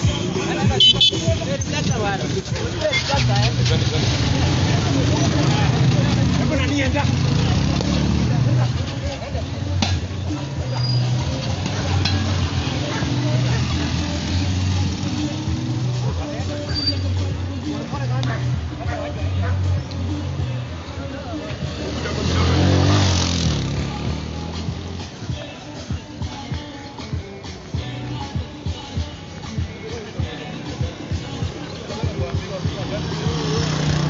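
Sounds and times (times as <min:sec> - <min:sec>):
people calling out: 0:00.0 - 0:24.5
motorcycle engines running: 0:00.0 - 0:34.0
car driving past: 0:21.5 - 0:24.4.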